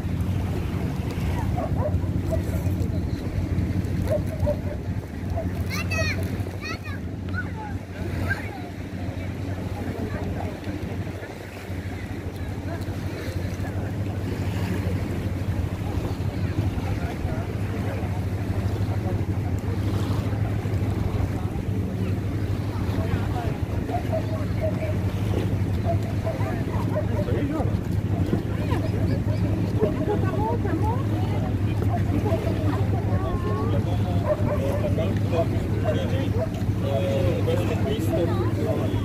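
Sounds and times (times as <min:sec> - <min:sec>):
faint voices: 0:00.0 - 0:39.0
small waves lapping: 0:00.0 - 0:39.0
wind on microphone: 0:00.0 - 0:39.0.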